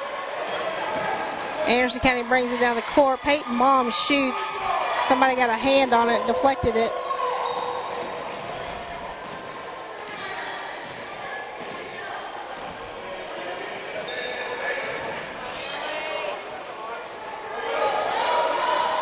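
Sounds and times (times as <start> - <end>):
echoing voices: 0.0 - 19.0.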